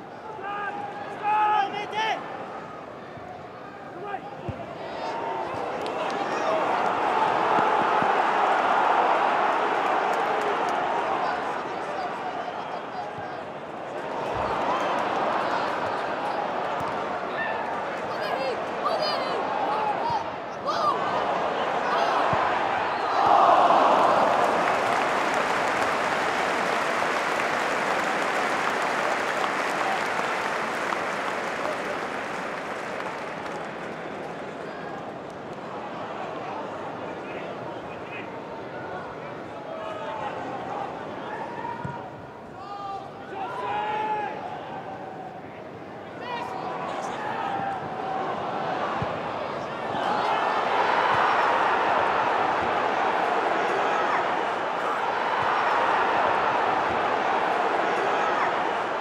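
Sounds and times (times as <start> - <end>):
stadium crowd roar: 0.0 - 59.0
crowd murmur: 46.5 - 59.0.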